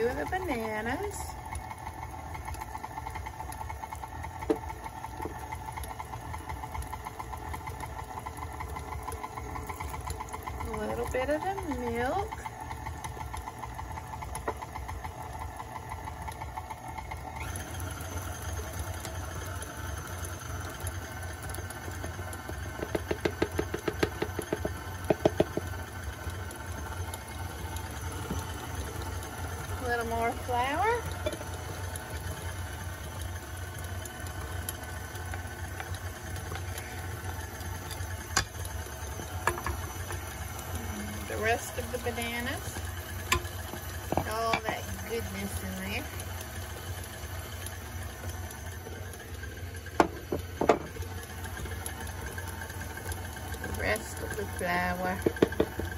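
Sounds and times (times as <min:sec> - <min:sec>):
stand mixer motor running: 0:00.0 - 0:55.9.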